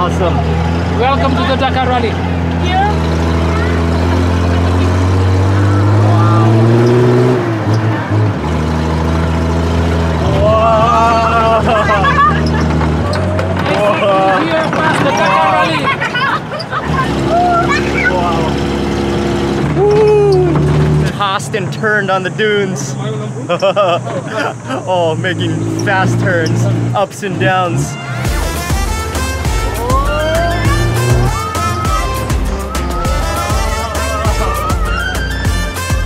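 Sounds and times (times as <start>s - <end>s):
jeep engine working hard: 0.0s - 36.0s
voices calling out: 0.0s - 36.0s.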